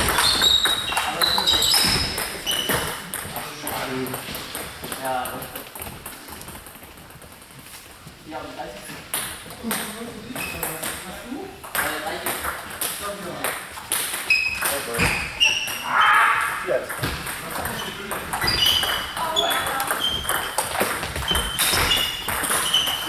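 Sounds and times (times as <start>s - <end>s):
table tennis balls pinging: 0.0s - 8.2s, 8.8s - 16.0s, 16.8s - 23.0s.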